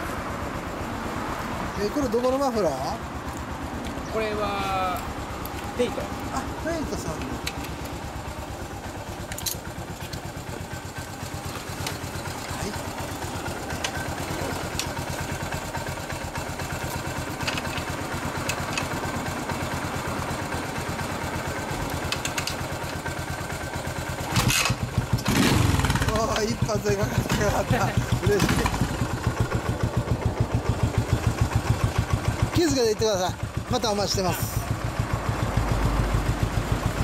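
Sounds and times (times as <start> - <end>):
motorcycle engine idling and revving: 0.0 - 37.0.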